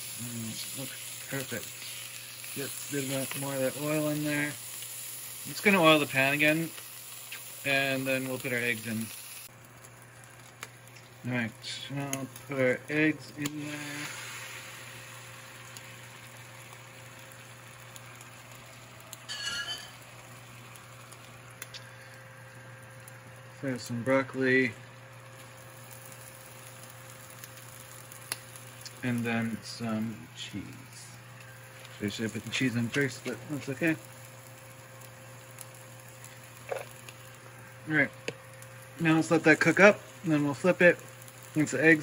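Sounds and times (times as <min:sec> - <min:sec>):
eggs and bacon sizzling in oil: 0:00.0 - 0:42.0
range hood fan humming: 0:00.0 - 0:42.0.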